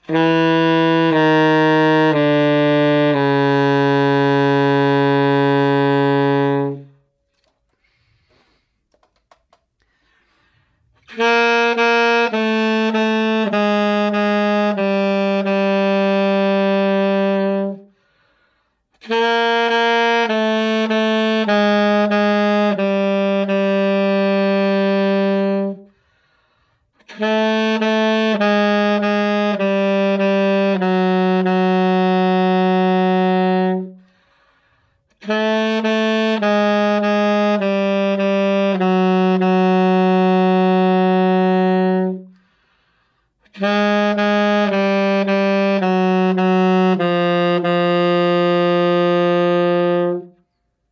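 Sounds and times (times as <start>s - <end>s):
alto saxophone playing: 0.0s - 7.7s, 10.5s - 50.9s
saxophonist breathing: 7.7s - 9.0s, 9.8s - 11.1s, 17.9s - 19.0s, 25.9s - 27.0s, 34.0s - 35.2s, 42.3s - 43.5s.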